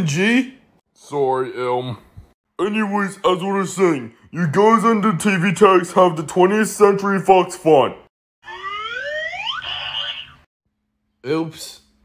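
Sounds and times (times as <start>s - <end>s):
upward sliding pitch: 8.4s - 10.4s.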